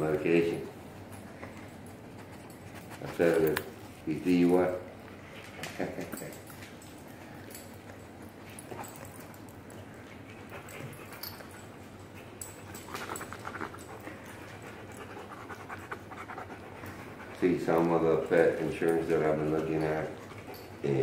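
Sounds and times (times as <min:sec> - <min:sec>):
dog panting: 0:00.0 - 0:06.5, 0:07.1 - 0:21.0.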